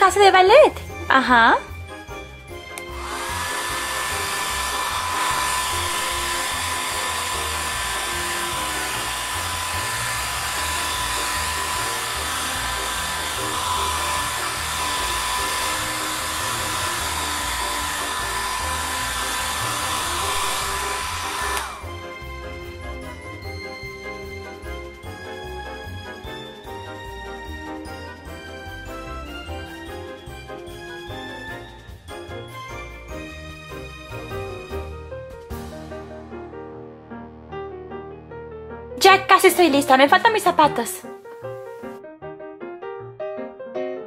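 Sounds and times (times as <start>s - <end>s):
hair dryer whining: 0.0s - 34.9s.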